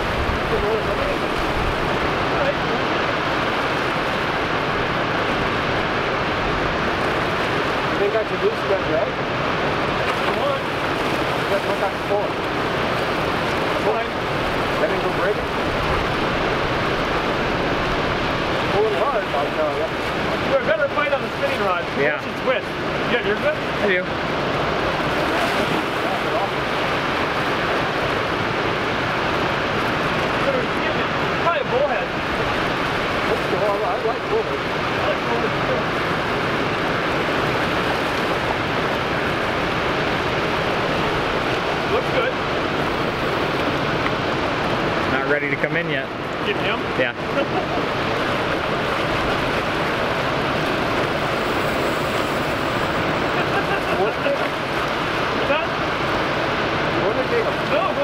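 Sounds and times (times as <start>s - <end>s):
whitewater rushing: 0.0s - 58.0s.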